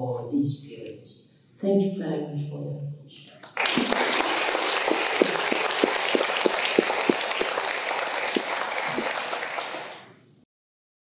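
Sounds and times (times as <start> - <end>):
audience applause: 3.4 - 10.2.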